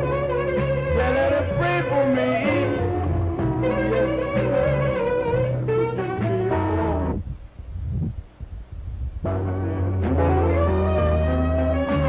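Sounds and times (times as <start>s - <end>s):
blues-rock band playing: 0.0s - 7.2s, 9.3s - 12.0s.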